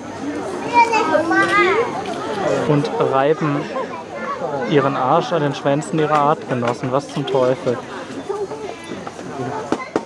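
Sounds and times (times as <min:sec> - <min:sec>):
young children talking and calling: 0:00.0 - 0:10.0.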